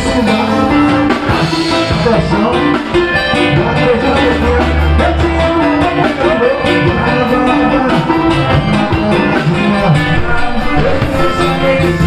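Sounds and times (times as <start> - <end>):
drums: 0.0 - 12.0
electric guitar: 0.0 - 12.0
live band playing dance music: 0.0 - 12.0.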